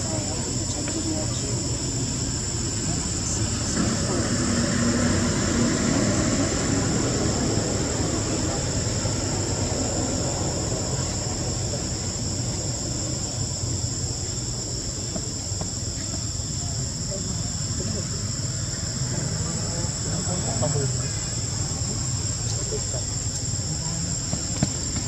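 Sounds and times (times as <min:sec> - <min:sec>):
faint distant voices: 0:00.0 - 0:25.0
forest insects droning: 0:00.0 - 0:25.0.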